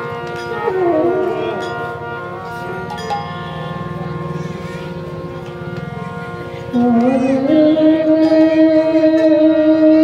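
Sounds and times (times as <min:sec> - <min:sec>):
harmonium holding a chord: 0:00.0 - 0:10.0
devotional singing: 0:06.7 - 0:10.0.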